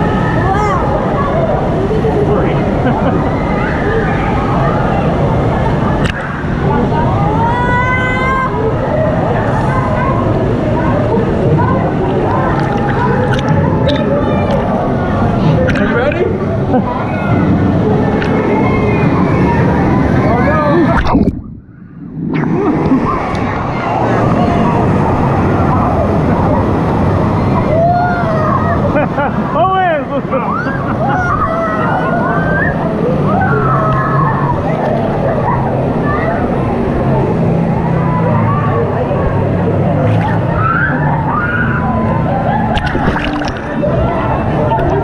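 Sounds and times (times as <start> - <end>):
children calling out: 0.0 - 2.0, 7.1 - 15.3, 27.4 - 29.3, 30.3 - 36.9, 40.2 - 45.0
water sloshing and rushing: 0.0 - 29.6, 39.7 - 45.0.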